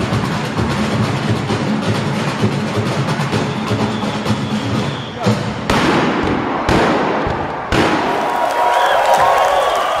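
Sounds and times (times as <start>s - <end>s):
faint whistle-like tones: 3.4s - 5.4s.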